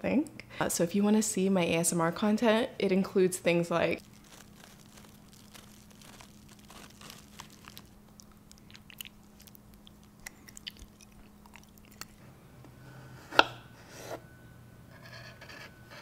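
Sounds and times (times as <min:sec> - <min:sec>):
faint steady hum: 0:00.0 - 0:16.0
crunchy clicks: 0:04.0 - 0:12.1
biting and chewing: 0:04.0 - 0:12.2.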